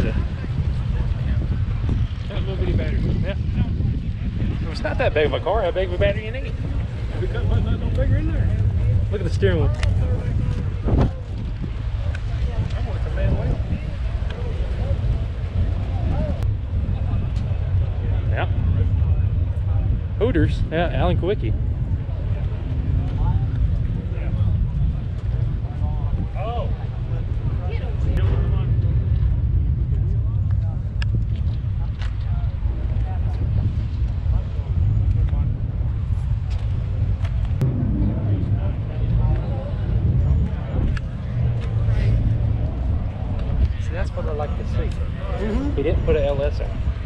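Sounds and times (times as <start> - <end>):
low rumble: 0.0 - 47.0.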